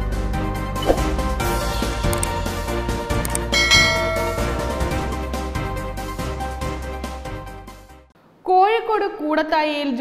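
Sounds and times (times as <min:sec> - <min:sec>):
background music: 0:00.0 - 0:08.1
bright bell chime: 0:03.5 - 0:05.2.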